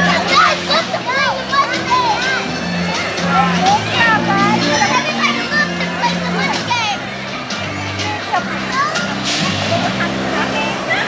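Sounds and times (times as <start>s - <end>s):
background music: 0.0s - 11.0s
children calling and chattering: 0.0s - 11.0s.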